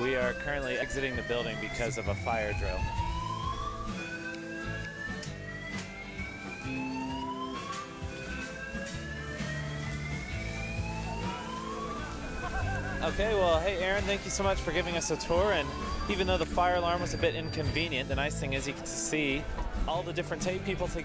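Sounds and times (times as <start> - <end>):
fire alarm whoop tone: 0.0 - 18.1
background music: 0.0 - 21.0.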